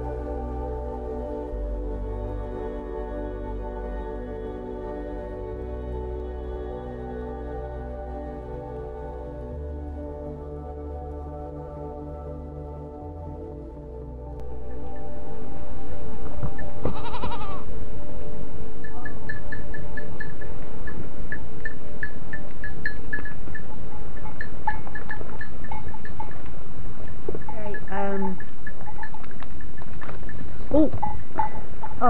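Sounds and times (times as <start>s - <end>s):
quiet background music: 0.0s - 32.0s
goats bleating: 16.9s - 17.6s.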